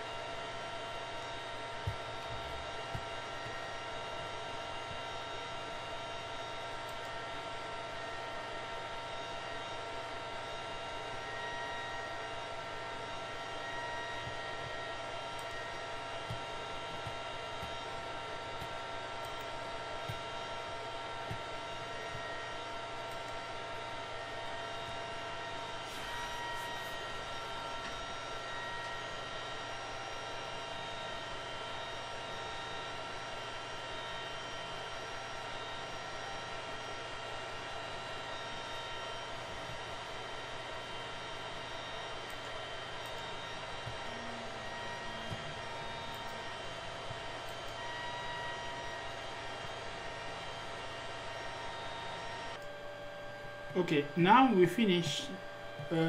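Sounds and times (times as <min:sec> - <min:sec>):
fan drone and hiss: 0:00.0 - 0:56.0.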